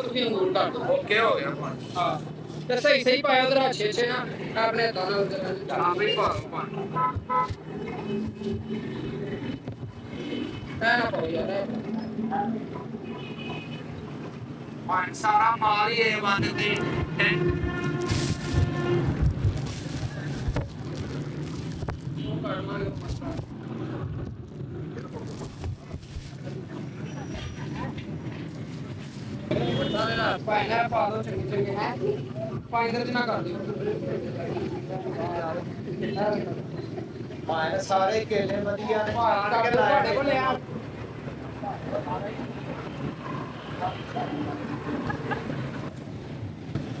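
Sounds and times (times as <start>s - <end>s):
low street rumble: 0.0s - 47.0s
plastic bag rustling and clicks: 19.4s - 22.2s.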